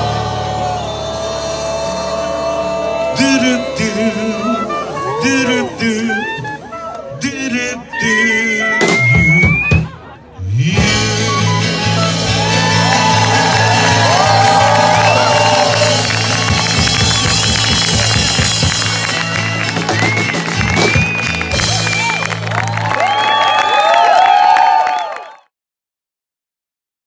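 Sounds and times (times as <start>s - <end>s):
audience cheering and applauding: 0.0s - 5.3s, 11.7s - 25.5s
steady bass: 0.0s - 6.1s, 9.0s - 23.0s
live band playing held chord: 0.0s - 23.4s.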